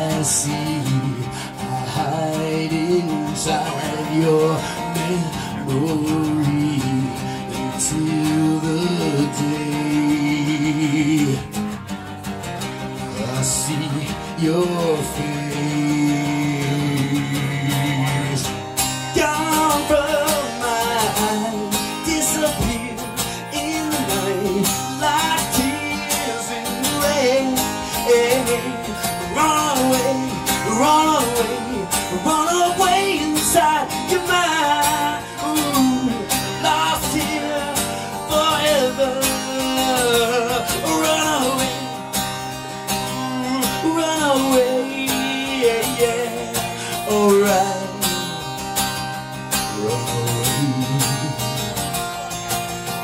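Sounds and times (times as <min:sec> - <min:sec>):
man singing: 0:00.0 - 0:11.9, 0:12.6 - 0:52.2
acoustic guitar: 0:00.0 - 0:53.0.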